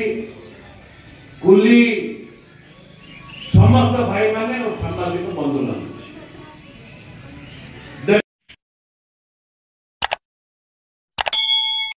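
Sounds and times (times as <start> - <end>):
notification bell ding: 11.2 - 12.0.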